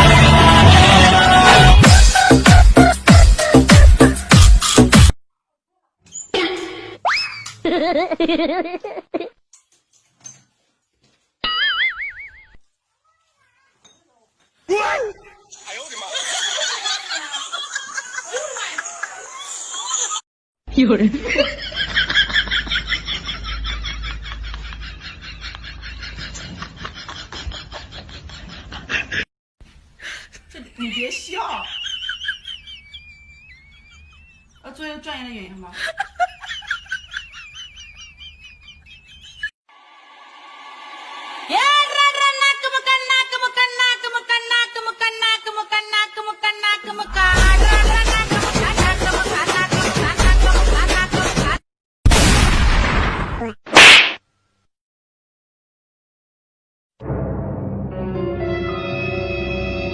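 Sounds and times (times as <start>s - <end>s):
high-pitched cackling laughter: 6.4s - 9.4s, 11.4s - 12.6s, 15.5s - 20.2s, 21.3s - 29.3s, 30.7s - 34.6s, 35.8s - 39.5s.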